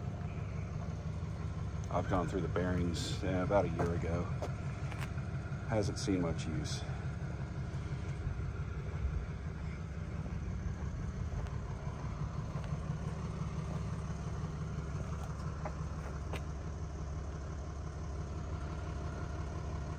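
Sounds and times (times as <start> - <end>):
steady low rumble: 0.0 - 19.9.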